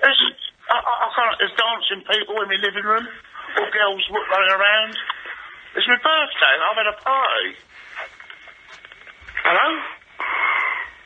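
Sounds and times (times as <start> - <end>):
person speaking over phone: 0.0 - 8.1, 9.3 - 10.0.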